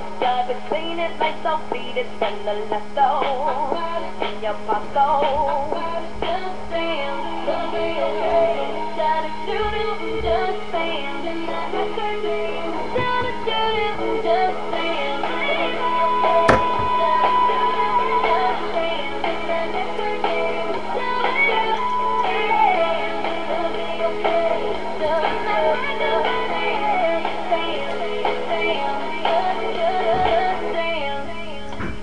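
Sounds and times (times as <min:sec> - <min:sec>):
pop music with synth and vocals: 0:00.0 - 0:32.0
steady electrical hum: 0:00.0 - 0:32.0.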